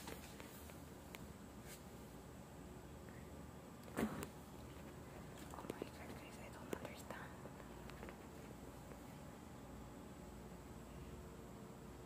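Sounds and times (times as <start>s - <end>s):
woman whispering: 5.5s - 7.6s.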